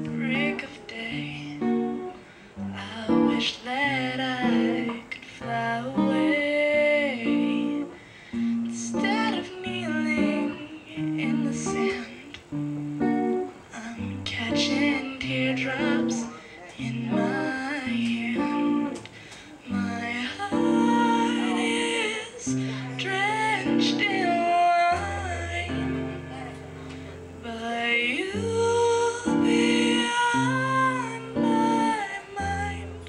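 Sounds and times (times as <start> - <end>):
acoustic guitar picked chords: 0.0 - 33.0
woman singing: 0.0 - 33.0.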